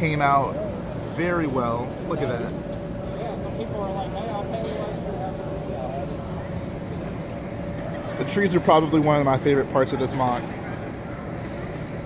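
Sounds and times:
murmur of distant voices: 0:00.0 - 0:12.0
steady hum: 0:00.0 - 0:12.0.

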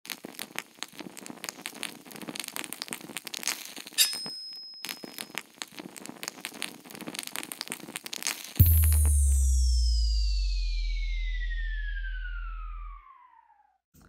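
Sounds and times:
dense irregular crackling: 0:00.1 - 0:04.0, 0:04.9 - 0:08.6
high ringing tone: 0:04.0 - 0:05.3
sharp hit: 0:08.6 - 0:13.4.

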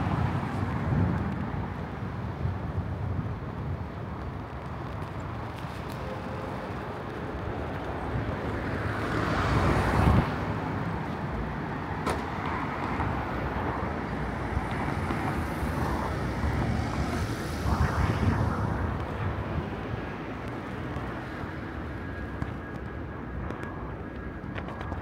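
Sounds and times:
traffic hum: 0:00.0 - 0:25.0
cars passing close by: 0:05.4 - 0:23.2.

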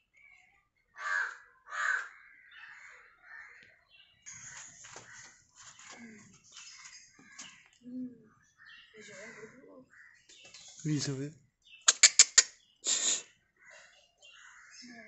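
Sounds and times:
crow cawing: 0:01.0 - 0:06.3, 0:08.6 - 0:10.3, 0:13.6 - 0:15.0.

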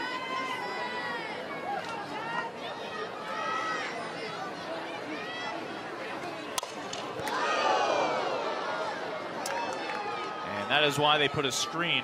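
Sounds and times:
crowd chatter and shouting: 0:00.0 - 0:12.0
bat cracking against ball: 0:06.6 - 0:07.4.

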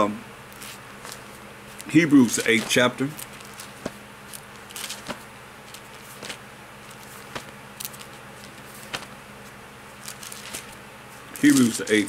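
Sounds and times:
low steady hum: 0:00.0 - 0:12.0
book pages rustling: 0:00.5 - 0:12.0.

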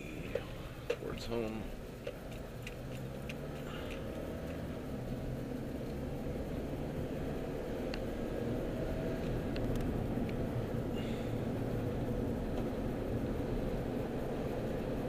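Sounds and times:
car engine and road noise: 0:00.0 - 0:15.0.

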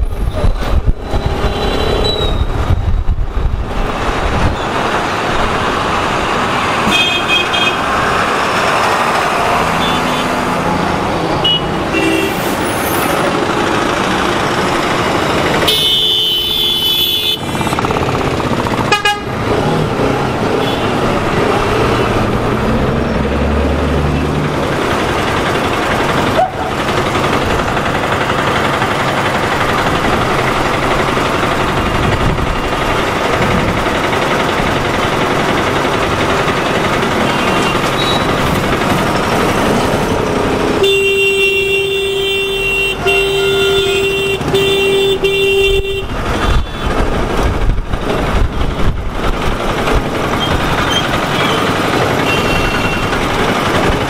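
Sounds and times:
motorcycle engine and road noise: 0:00.0 - 0:54.0
vehicle horn: 0:06.8 - 0:07.9, 0:11.4 - 0:12.5, 0:15.6 - 0:17.6, 0:18.9 - 0:19.4, 0:20.6 - 0:21.0, 0:40.8 - 0:47.0, 0:52.2 - 0:53.1.

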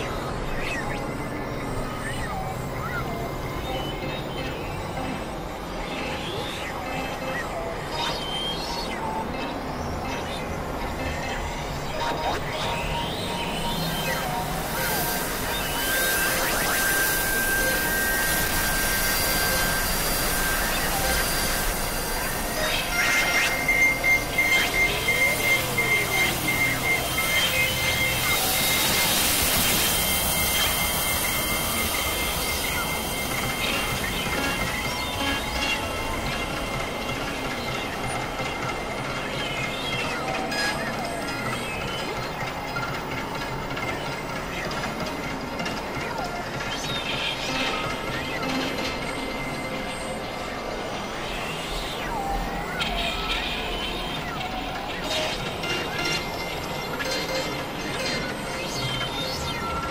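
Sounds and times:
gliding synth tone: 0:00.0 - 0:59.9
hissy electronic drone: 0:00.0 - 0:59.9
pulsing high tone: 0:00.0 - 0:59.9
steady high tone: 0:00.0 - 0:59.9.

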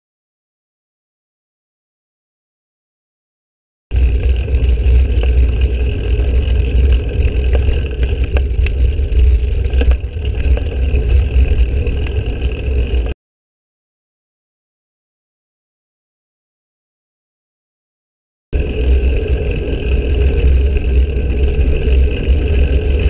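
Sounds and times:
tyre and road rumble: 0:03.9 - 0:13.2, 0:18.6 - 0:23.0.

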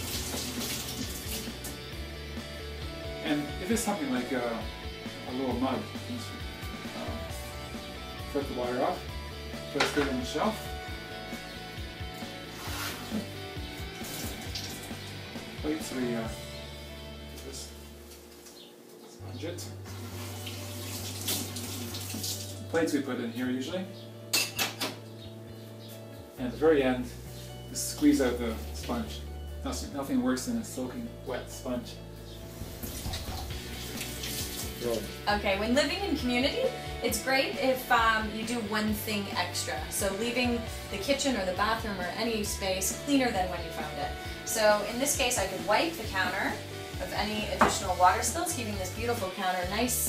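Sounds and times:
water splashing in sink: 0:00.0 - 0:01.8, 0:12.6 - 0:15.2, 0:19.9 - 0:22.6, 0:32.8 - 0:35.2
guitar music: 0:00.0 - 0:50.0.

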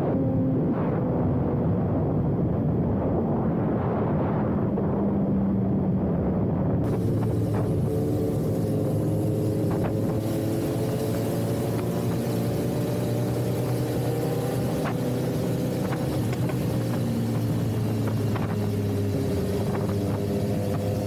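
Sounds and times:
motorcycle engine cruising: 0:04.4 - 0:21.0.

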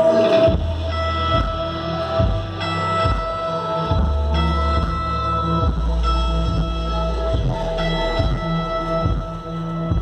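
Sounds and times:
electric guitar sustained notes: 0:00.0 - 0:10.0.

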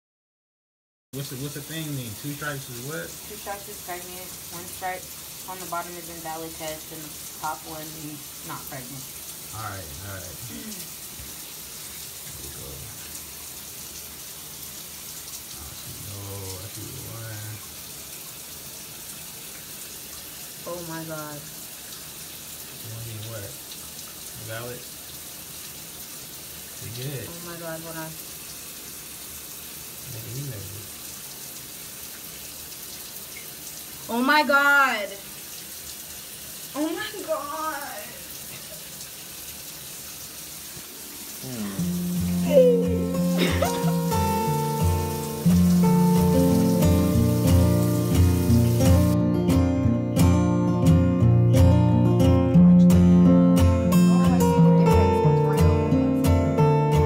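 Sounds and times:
running water hiss: 0:01.2 - 0:49.2
music: 0:41.5 - 0:57.0.

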